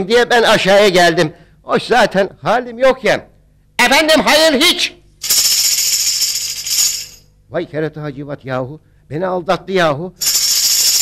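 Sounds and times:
tambourine jingling roll: 0:05.2 - 0:07.4, 0:10.2 - 0:11.0.

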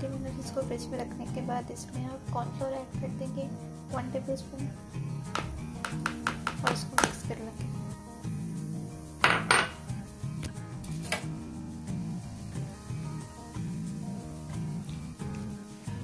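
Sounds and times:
background music: 0:00.0 - 0:16.0
knocks in kitchen: 0:05.3 - 0:07.2, 0:09.2 - 0:09.9
flour tapped from ceramic bowl: 0:05.4 - 0:07.2.

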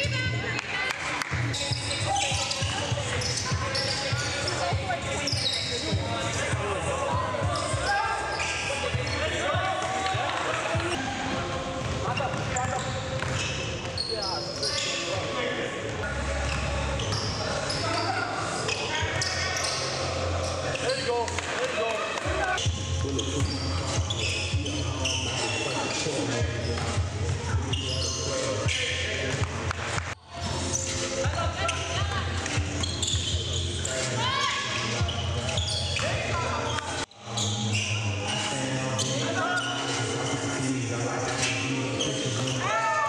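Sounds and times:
voices: 0:00.0 - 0:43.0.

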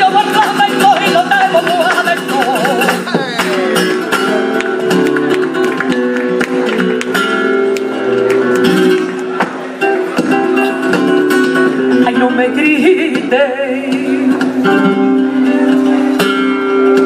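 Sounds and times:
woman singing: 0:00.0 - 0:03.6
flamenco guitar: 0:00.0 - 0:17.0
handclaps: 0:00.9 - 0:09.6.

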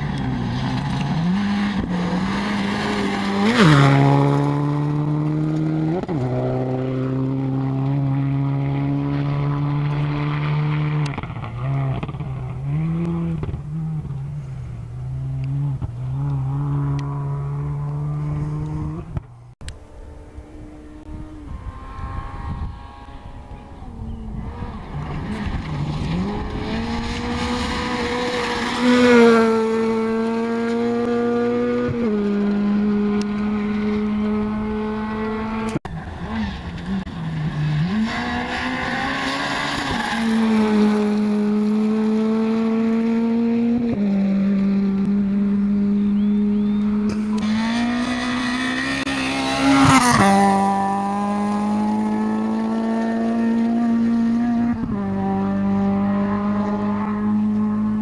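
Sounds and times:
rally car approaching through gears: 0:00.0 - 0:58.0
rally car engine revving: 0:00.0 - 0:58.0.

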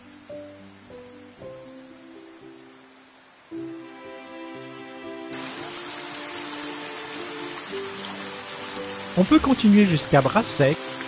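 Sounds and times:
background music of held notes: 0:00.0 - 0:11.0
small waterfall rushing into pool: 0:05.3 - 0:11.0.

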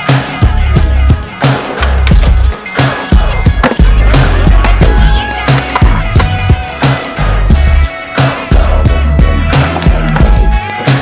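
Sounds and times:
music with heavy bass beat: 0:00.0 - 0:11.0
skateboard grinding on concrete: 0:01.2 - 0:07.1
skateboard impacts: 0:01.4 - 0:07.0.

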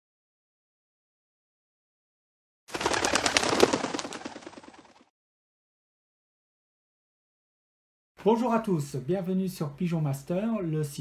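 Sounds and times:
pigeon wings flapping: 0:02.7 - 0:05.1.

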